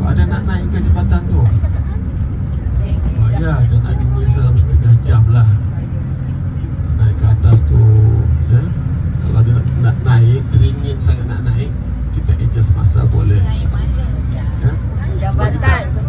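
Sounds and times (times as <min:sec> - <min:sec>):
bus engine and road rumble: 0:00.0 - 0:16.0.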